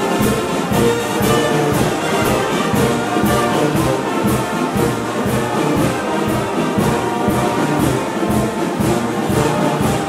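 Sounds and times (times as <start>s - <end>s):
brass band playing a march: 0.0s - 10.0s.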